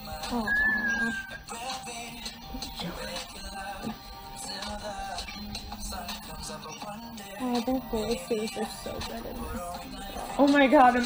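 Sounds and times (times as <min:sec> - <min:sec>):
background music: 0:00.0 - 0:11.0
woman squealing: 0:00.3 - 0:01.4.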